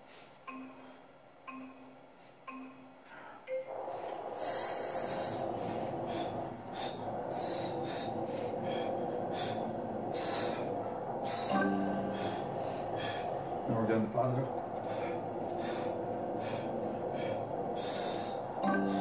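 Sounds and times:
machine countdown beep: 0.5s - 6.4s, 11.3s - 13.7s, 17.7s - 19.0s
motor humming: 3.5s - 19.0s.

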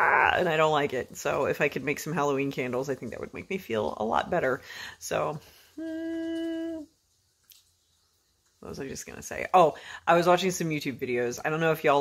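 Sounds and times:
woman humming mmm: 5.8s - 6.9s.

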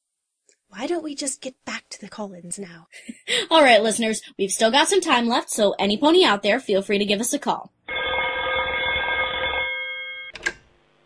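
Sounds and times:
telephone ringing: 7.9s - 10.4s.

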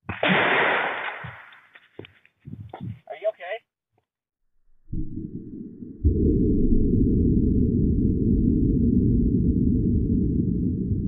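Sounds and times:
low steady rumble: 4.8s - 11.0s.

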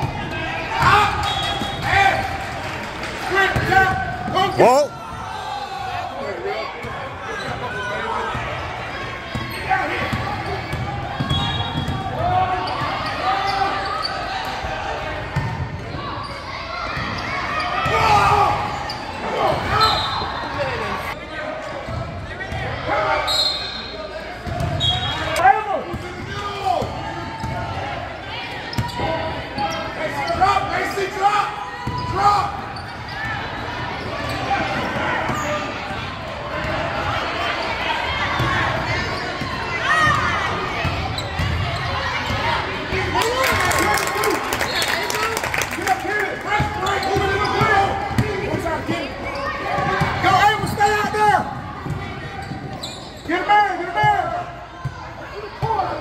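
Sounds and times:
people calling out and chattering: 0.0s - 56.0s.

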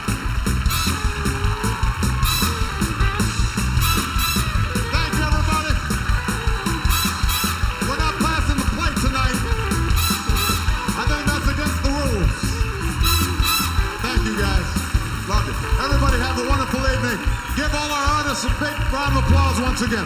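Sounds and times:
audience clapping along: 0.0s - 20.0s
live band playing: 0.0s - 20.0s.

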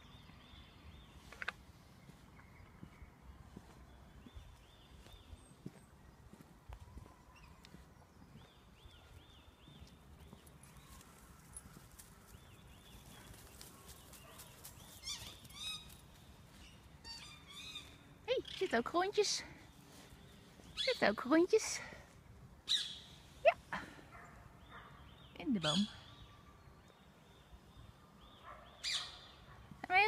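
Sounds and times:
birds chirping: 0.0s - 30.0s
faint ticks and rustles: 9.0s - 16.7s
higher bird calls: 28.4s - 29.4s.

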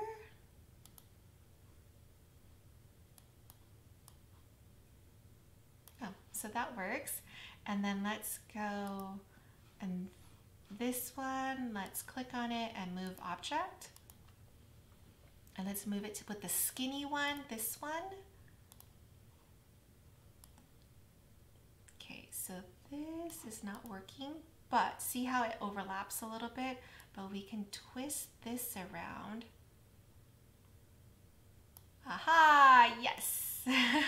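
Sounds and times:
faint computer mouse click: 0.8s - 1.1s
faint computer mouse clicks: 0.8s - 1.1s, 3.1s - 4.2s, 13.9s - 14.4s, 18.7s - 19.0s, 20.4s - 20.9s.

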